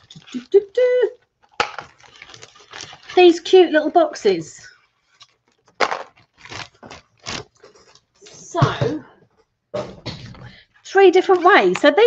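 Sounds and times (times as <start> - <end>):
plastic and paper crinkling scrapes: 0.0 - 8.4, 10.2 - 12.0.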